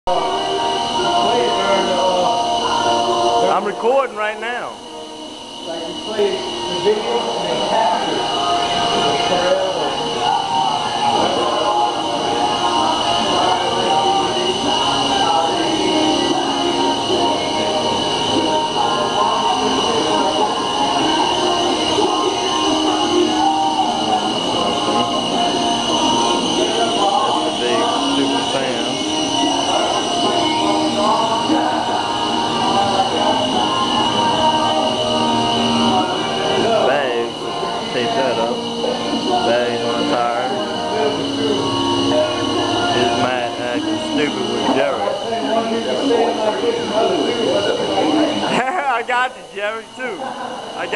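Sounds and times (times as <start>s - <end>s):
faint voices: 0.1s - 50.9s
machine drone with whining tones: 0.1s - 50.9s.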